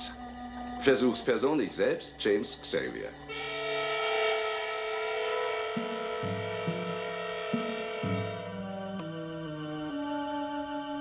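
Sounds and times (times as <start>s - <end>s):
sustained high chord: 0.0s - 9.3s
low notes: 0.0s - 9.7s.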